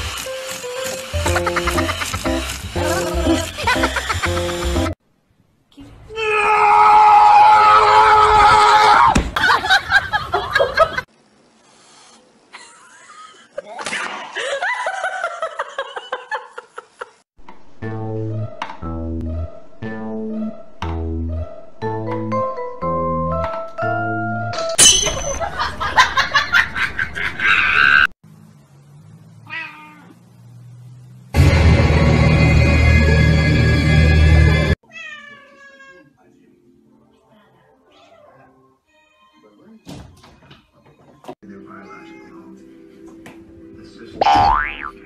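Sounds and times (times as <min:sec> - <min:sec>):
cat yowling: 0:29.4 - 0:30.2, 0:34.8 - 0:36.1, 0:41.8 - 0:42.5.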